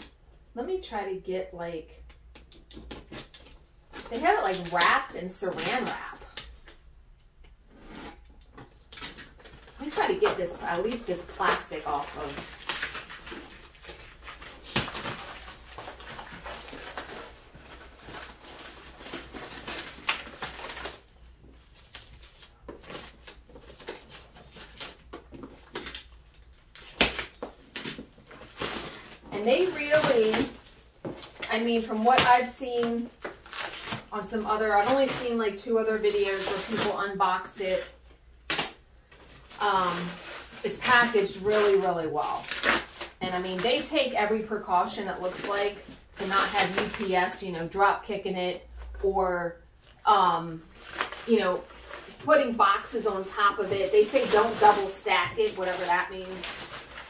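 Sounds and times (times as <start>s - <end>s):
plastic wrap crinkling and tearing: 2.7s - 6.8s, 8.7s - 47.4s, 49.7s - 57.0s.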